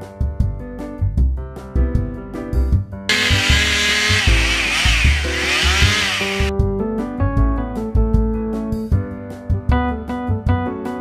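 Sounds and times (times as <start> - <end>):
chainsaw running: 3.1 - 6.5
background music: 3.1 - 8.6.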